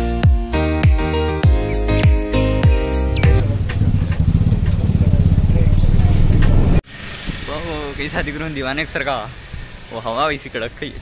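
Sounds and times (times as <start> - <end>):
background music: 0.0 - 3.6
vehicle engine running: 3.0 - 9.9
road and wind noise: 3.2 - 11.0.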